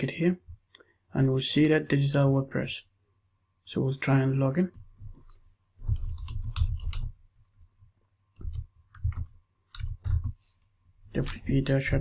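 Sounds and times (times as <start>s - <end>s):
computer keyboard typing: 5.8s - 7.6s, 8.4s - 10.4s.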